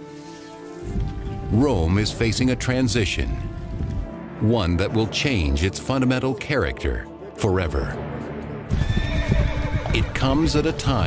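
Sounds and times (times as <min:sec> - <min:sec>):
low music drone: 0:00.0 - 0:11.0
horse whinny: 0:08.7 - 0:10.2
horse hoofbeats: 0:08.7 - 0:11.0.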